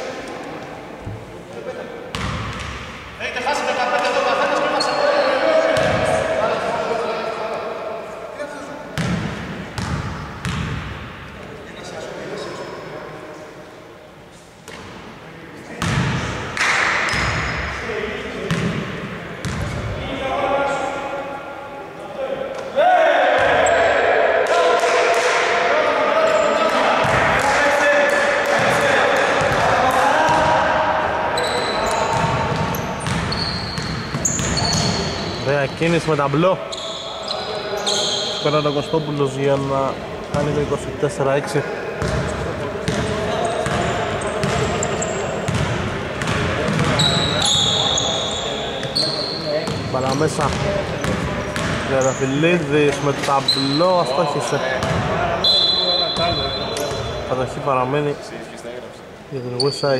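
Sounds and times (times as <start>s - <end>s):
basketball bouncing on wooden court: 9.0s - 10.9s, 19.4s - 19.7s, 32.1s - 35.1s, 42.0s - 44.7s, 45.5s - 47.3s, 49.7s - 51.9s, 54.8s - 55.1s
players calling out: 22.6s - 40.9s, 41.7s - 57.6s.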